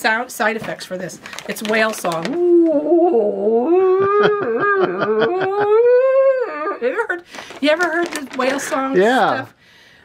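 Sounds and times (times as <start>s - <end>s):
woman imitating whale song: 2.3s - 7.2s.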